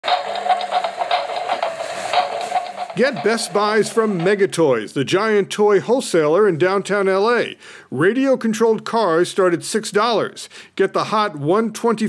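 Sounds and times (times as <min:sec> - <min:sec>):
toy car electric motor whining: 0:00.0 - 0:04.0.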